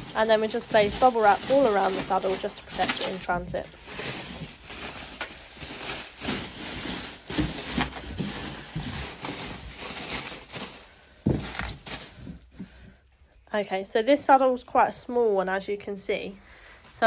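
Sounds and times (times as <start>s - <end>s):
bubble wrap crinkling: 0.0s - 13.4s.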